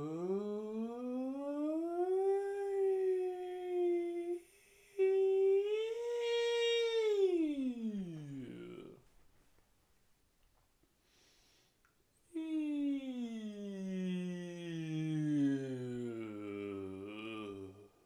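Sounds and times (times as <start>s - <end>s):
person singing long sliding notes: 0.0s - 9.0s, 12.4s - 18.0s.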